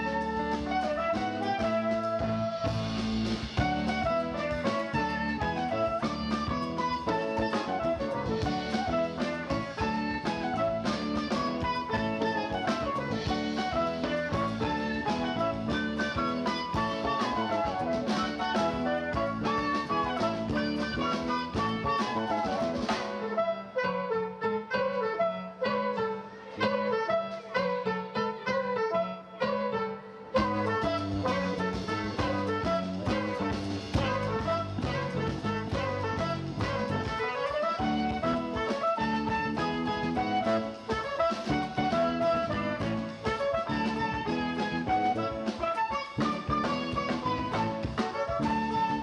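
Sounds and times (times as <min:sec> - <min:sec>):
electric bass: 0:00.0 - 0:23.2, 0:30.4 - 0:49.0
drum kit: 0:00.0 - 0:23.9, 0:30.3 - 0:49.0
electric guitar: 0:00.0 - 0:49.0
soprano saxophone: 0:00.0 - 0:49.0.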